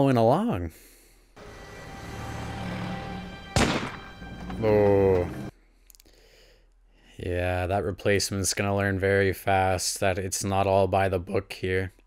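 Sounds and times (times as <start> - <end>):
held dramatic music: 1.4 - 5.5.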